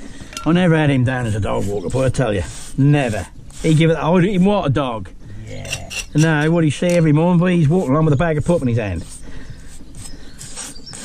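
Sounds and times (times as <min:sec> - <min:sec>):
pointing tool scraping mortar: 0:00.3 - 0:04.5, 0:05.6 - 0:11.0.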